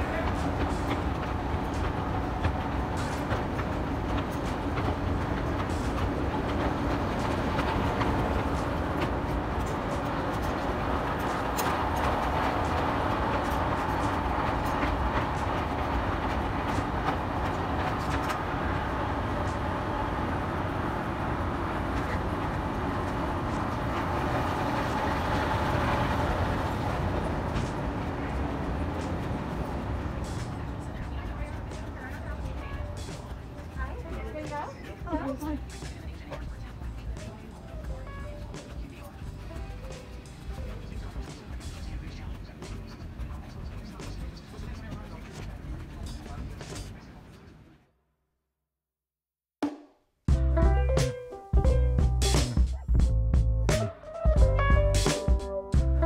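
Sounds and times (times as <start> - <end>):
escalator steps clicking: 0.0 - 47.0
escalator hum and rumble: 0.0 - 47.5.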